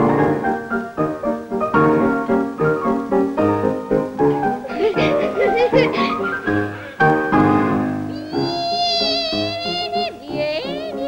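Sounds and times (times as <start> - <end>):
piano chords: 0.0 - 11.0
soprano voice singing high note: 8.0 - 11.0.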